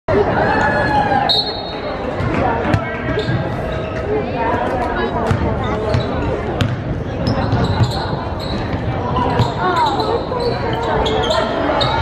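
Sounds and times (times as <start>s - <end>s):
people shouting and chatting: 0.1s - 12.0s.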